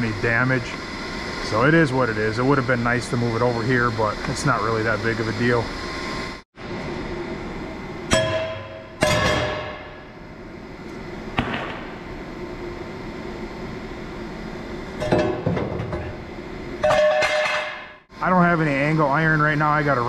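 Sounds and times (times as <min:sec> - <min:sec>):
hammer blows ringing on steel: 0:08.1 - 0:10.0.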